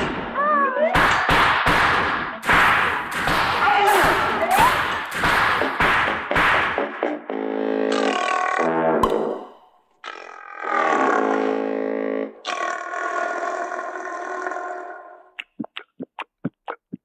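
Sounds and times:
short gulping sounds: 0:15.4 - 0:17.0.

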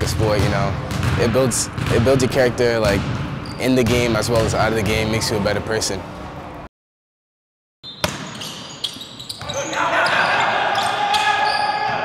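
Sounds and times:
basketball bouncing on hardwood floor: 0:00.1 - 0:02.1.

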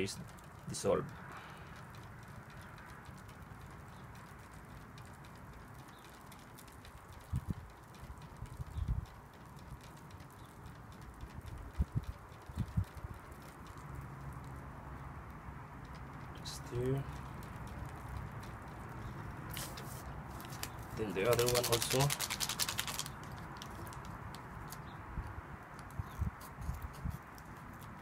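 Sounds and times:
low background noise: 0:00.0 - 0:28.0
stick ticking against plastic cup: 0:17.1 - 0:19.5, 0:20.4 - 0:28.0.

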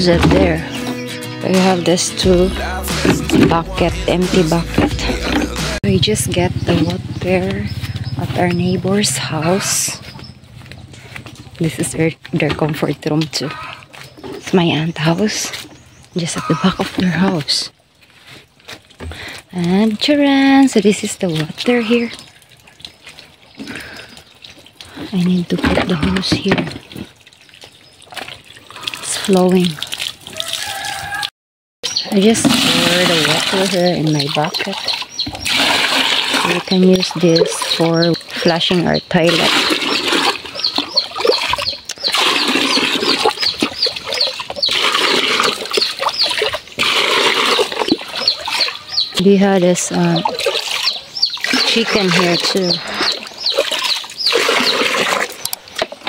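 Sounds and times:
water from hose into plastic bucket: 0:00.0 - 0:10.0, 0:10.6 - 0:31.3, 0:31.9 - 0:56.0
birds chirping: 0:00.0 - 0:17.8, 0:19.0 - 0:31.2, 0:31.8 - 0:56.0.

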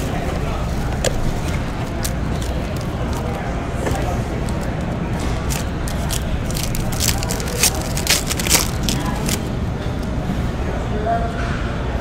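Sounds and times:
card wrapper crinkling and clicking: 0:01.0 - 0:09.5.

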